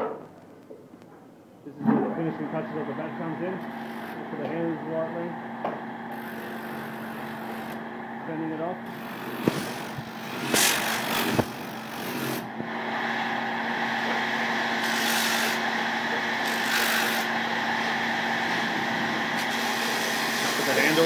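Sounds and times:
sanding machine humming: 2.1s - 21.0s
wood rasping on sanding drum: 8.9s - 12.4s, 14.8s - 15.6s, 16.4s - 17.3s, 19.4s - 21.0s.

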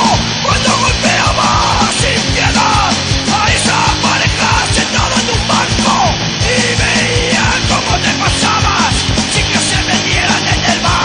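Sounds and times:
fast drumming: 0.0s - 11.0s
punk rock song: 0.0s - 11.0s
shouted lead vocal: 0.0s - 11.0s.

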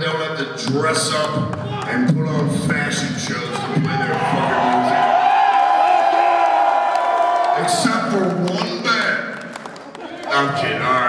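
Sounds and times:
crowd cheering and whooping: 3.7s - 8.1s.

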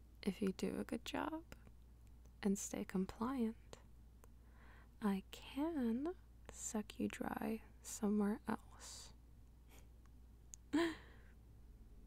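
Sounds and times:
woman sighing: 10.7s - 11.3s.

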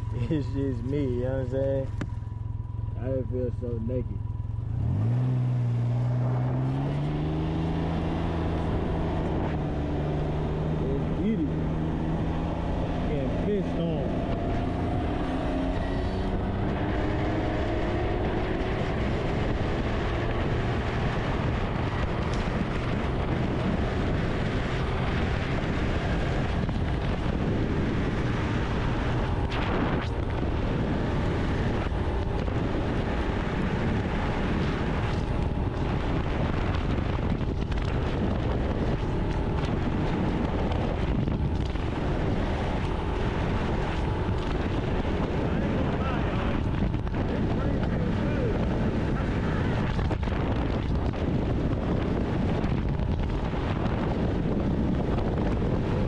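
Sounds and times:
motorcycle engine at speed: 0.0s - 56.0s
wind noise on microphone: 4.6s - 56.0s.

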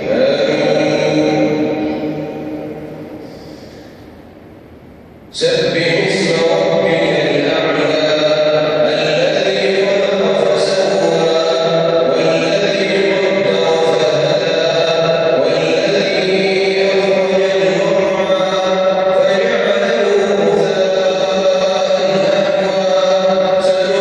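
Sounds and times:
man chanting over loudspeakers: 0.0s - 4.1s, 5.3s - 24.0s.

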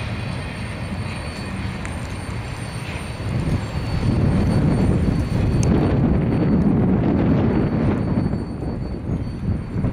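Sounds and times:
train wheels rumbling on track: 0.0s - 9.9s.

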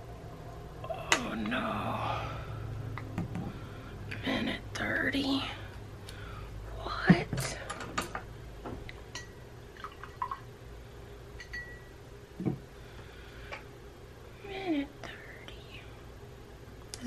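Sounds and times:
soft murmured voice: 0.8s - 2.5s, 6.7s - 7.9s, 14.4s - 16.0s.

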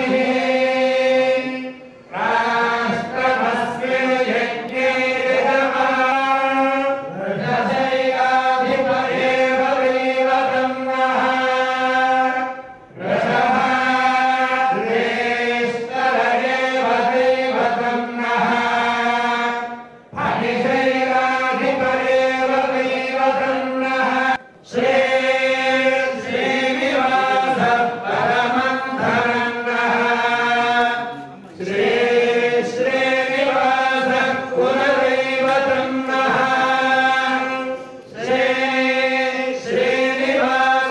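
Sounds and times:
group chanting in unison: 0.0s - 40.9s.

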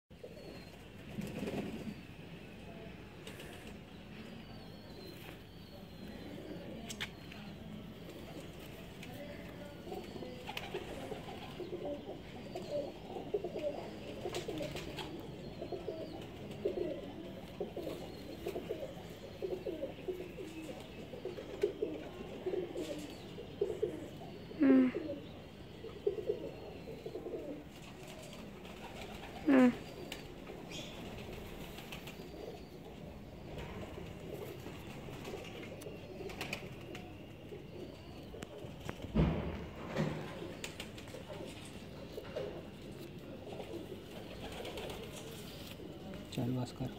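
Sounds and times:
pigeons cooing: 0.1s - 2.5s, 3.2s - 46.9s.

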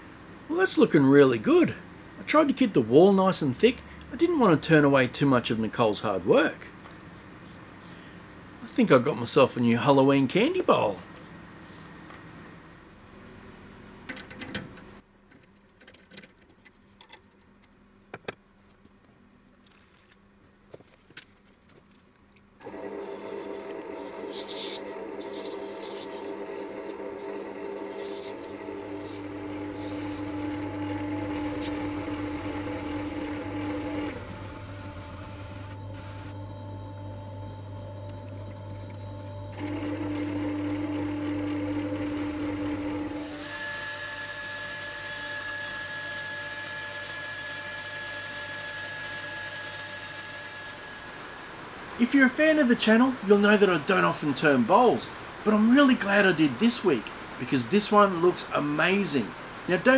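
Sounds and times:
wood lathe motor humming: 22.6s - 51.5s
sandpaper rubbing spinning bowl: 23.0s - 34.1s.

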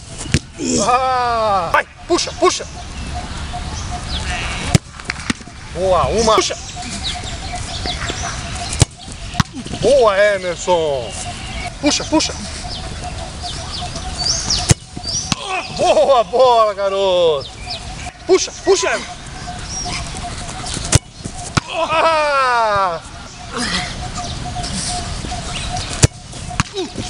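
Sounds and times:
birds chirping: 0.0s - 27.0s
faint outdoor background: 0.0s - 27.0s
ball kicked thud: 0.2s - 0.5s, 4.7s - 5.4s, 8.8s - 9.7s, 14.7s - 15.5s
boot kicking football: 0.2s - 0.5s, 7.8s - 9.8s, 14.6s - 15.8s, 20.7s - 21.8s, 26.0s - 27.0s.

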